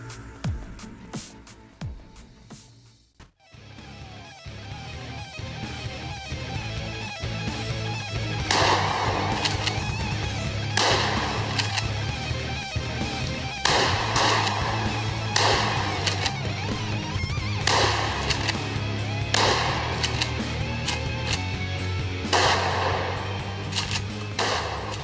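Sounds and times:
rock music with electric guitar: 3.5 - 25.0
shotgun blasts: 8.4 - 21.4, 22.2 - 25.0.

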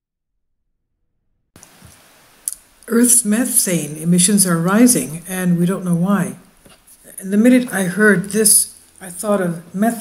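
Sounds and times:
faint room hiss: 1.6 - 10.0
woman speaking: 2.8 - 10.0.

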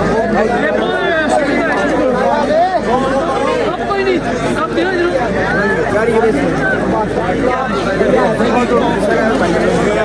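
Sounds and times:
men talking babble: 0.0 - 10.0.

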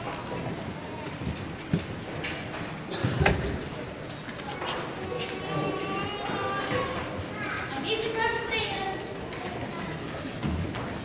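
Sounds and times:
indistinct chatter of many voices: 0.0 - 11.0.

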